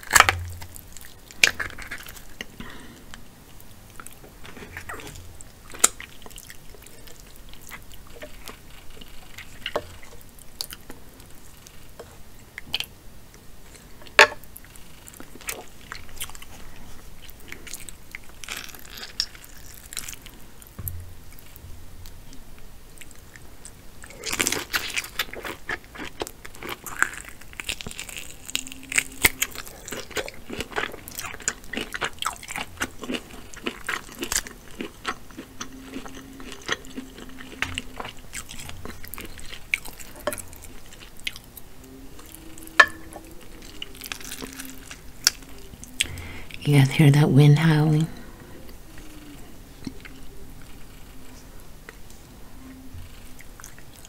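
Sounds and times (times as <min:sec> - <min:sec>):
chewing and crunching shellfish: 0:00.0 - 0:13.0, 0:13.7 - 0:46.6, 0:47.6 - 0:52.2, 0:52.8 - 0:54.0.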